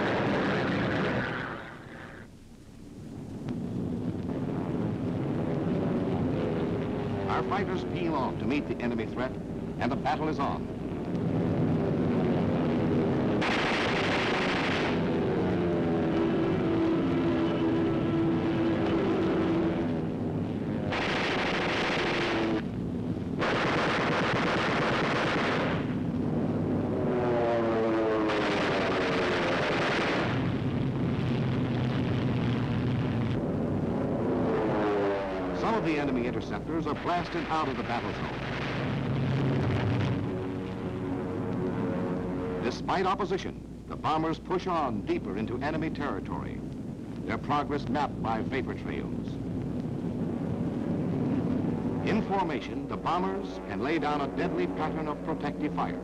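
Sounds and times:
aircraft engines diving and climbing: 0.0s - 56.0s
machine-gun fire: 13.4s - 15.2s, 20.9s - 22.6s, 23.4s - 26.0s, 28.2s - 30.6s.

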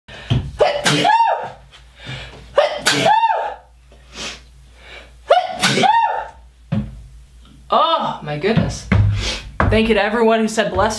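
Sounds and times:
man sneezing: 0.6s - 1.6s, 2.5s - 3.6s, 5.3s - 6.3s.

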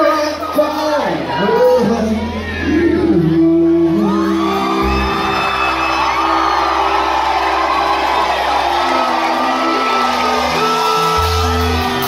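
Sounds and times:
live country rock band: 0.0s - 12.0s
audience whooping: 2.4s - 12.0s.

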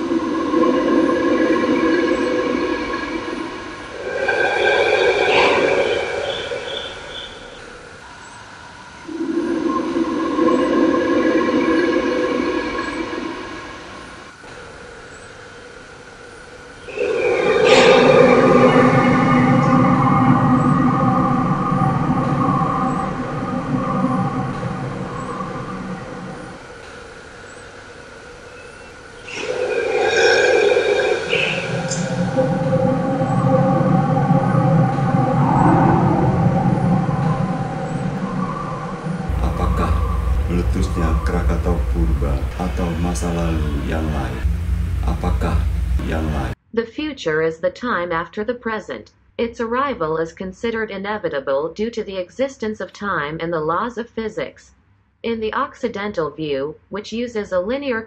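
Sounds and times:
dark droning soundtrack: 0.0s - 46.6s.

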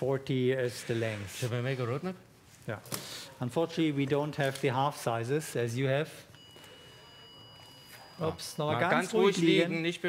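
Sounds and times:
high-pitched warning beep: 6.3s - 9.6s.

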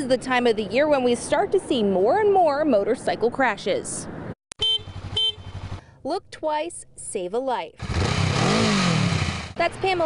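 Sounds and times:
engine and traffic rumble: 0.0s - 10.0s
vehicle horn honks: 4.6s - 5.7s.

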